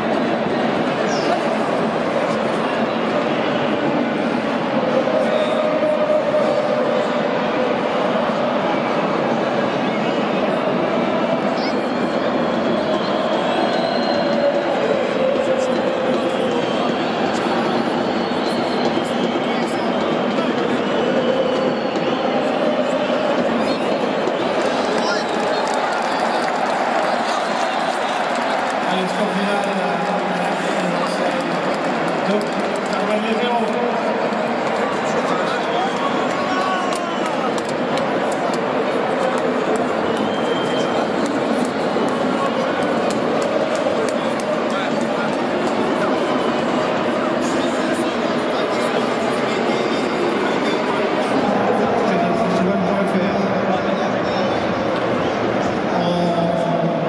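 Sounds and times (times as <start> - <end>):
stadium crowd chanting and singing: 0.0 - 57.0.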